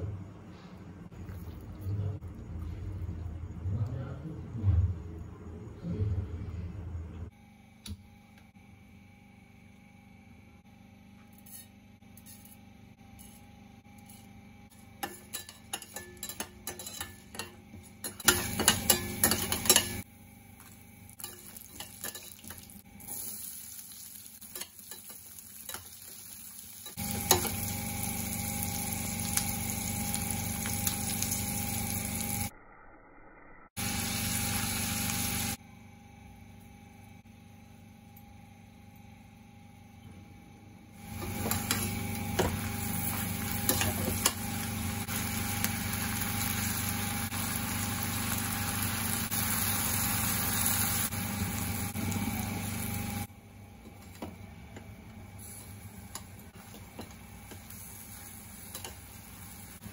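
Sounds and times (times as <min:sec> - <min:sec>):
vegetables sizzling in oil: 0:14.8 - 0:20.0, 0:20.6 - 0:32.5, 0:33.8 - 0:35.6, 0:41.0 - 0:53.3, 0:55.2 - 0:59.9.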